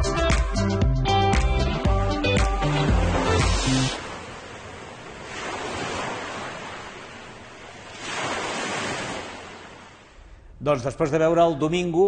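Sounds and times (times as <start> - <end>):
sea waves washing in: 2.6 - 10.3.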